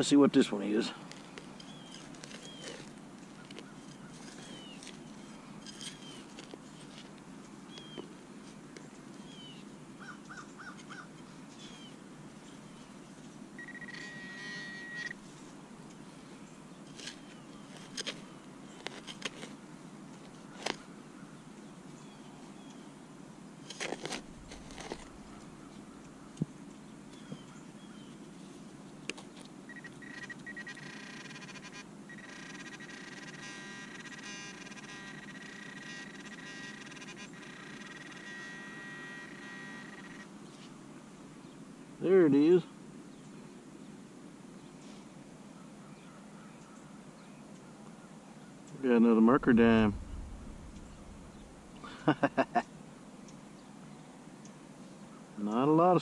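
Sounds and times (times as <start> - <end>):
metal detector tone: 13.6 - 15.2, 29.7 - 40.3
hand digging in soil: 23.7 - 25.5.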